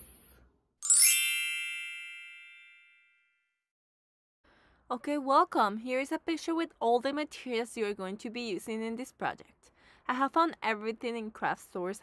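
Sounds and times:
bright bell chime: 0.0s - 3.4s.

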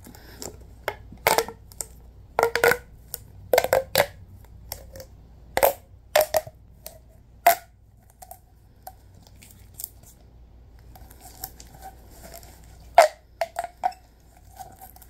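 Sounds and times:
plastic pop tube crackling: 0.0s - 10.2s, 10.8s - 15.0s.

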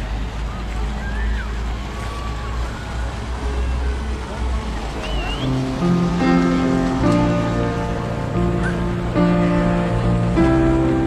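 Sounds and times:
fountain splashing: 0.0s - 11.0s
voices of passers-by: 0.0s - 11.0s
steady low rumble: 4.3s - 11.0s
music: 5.1s - 11.0s.

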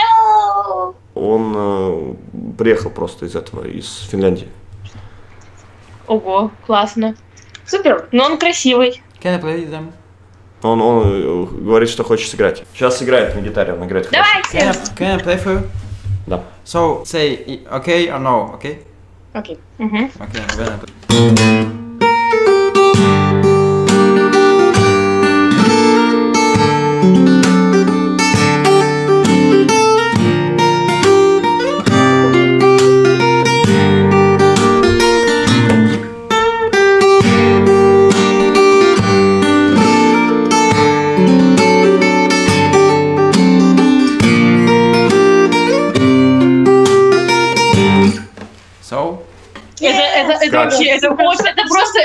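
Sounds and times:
acoustic guitar solo: 14.2s - 16.3s, 20.2s - 48.6s, 49.5s - 52.0s.

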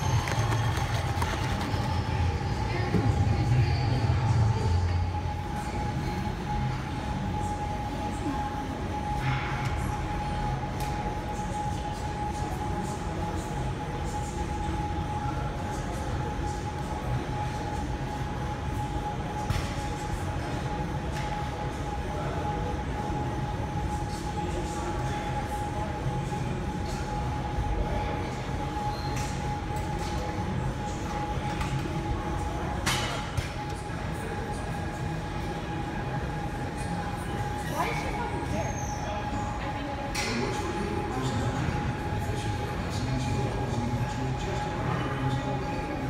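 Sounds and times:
droning hum: 0.0s - 46.0s
low mechanical rumble with whine: 0.0s - 46.0s.

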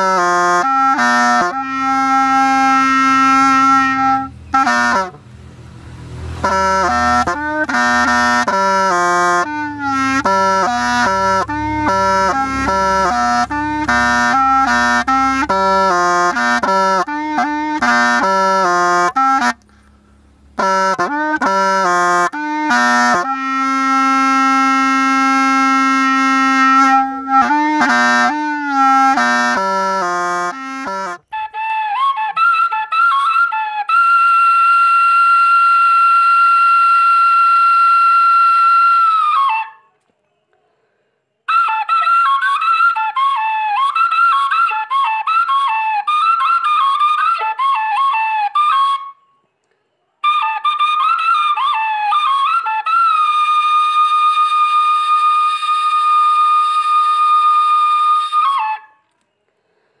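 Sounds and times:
flute-like wind instrument melody: 0.0s - 40.0s, 41.5s - 49.5s, 50.2s - 59.2s.

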